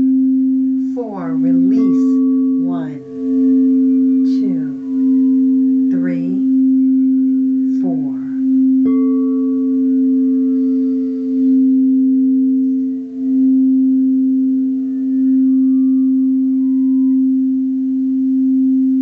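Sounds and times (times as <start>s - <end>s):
crystal singing bowl note: 0.0s - 19.0s.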